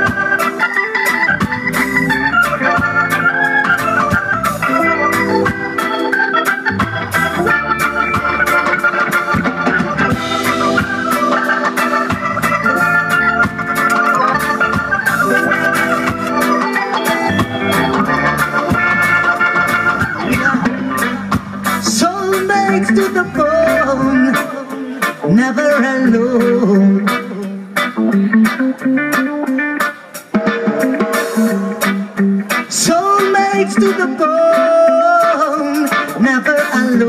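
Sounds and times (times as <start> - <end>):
held organ chords: 0.0 - 25.3
reggae band playing: 0.0 - 37.0.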